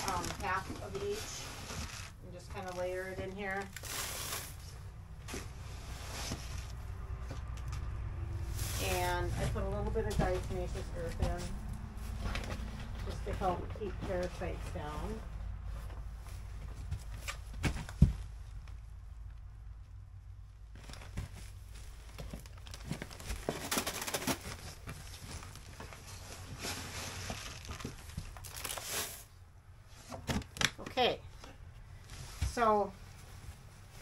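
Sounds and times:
plastic bags crinkling and rustling: 0.0s - 6.8s, 20.7s - 29.3s.

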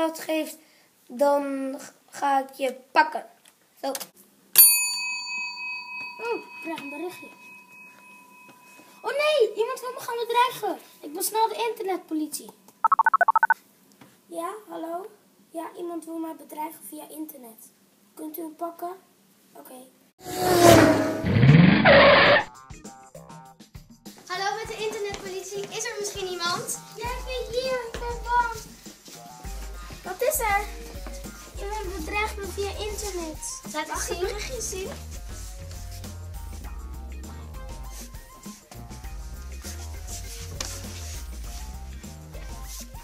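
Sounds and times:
quiet music: 24.3s - 43.0s.

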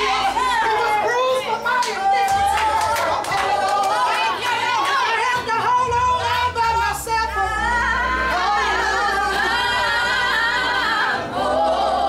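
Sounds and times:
person singing gospel: 0.0s - 12.0s
steady bass: 0.0s - 12.0s.

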